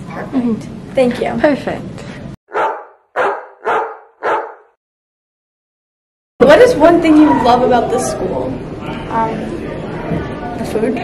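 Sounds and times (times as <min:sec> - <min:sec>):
dog barking: 0:02.5 - 0:04.8.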